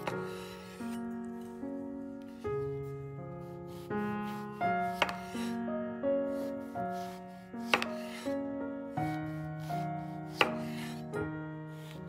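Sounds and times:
background music: 0.0 - 12.0
knife chopping on cutting board: 4.3 - 5.6, 7.7 - 8.3, 9.7 - 11.0.

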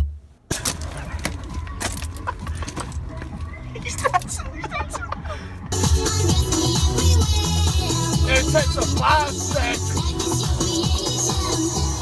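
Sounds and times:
music: 0.6 - 12.0.

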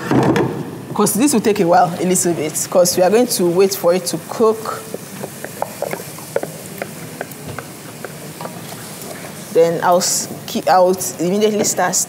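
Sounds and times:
faint kitchen room noise: 0.0 - 12.0
spoon tapping a cooking pot: 4.8 - 8.6.

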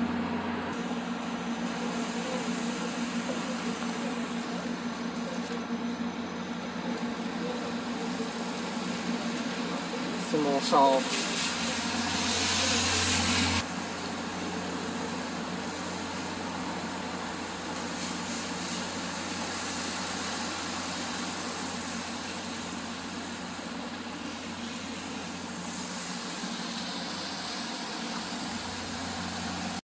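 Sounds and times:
coach engine and ventilation drone: 0.0 - 29.8.

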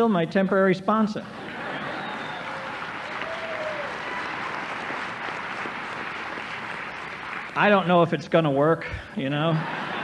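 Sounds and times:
audience applauding: 1.4 - 8.0.

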